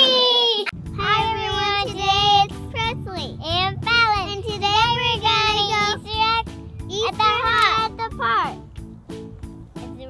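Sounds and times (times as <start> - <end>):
girl singing: 0.0 - 6.4.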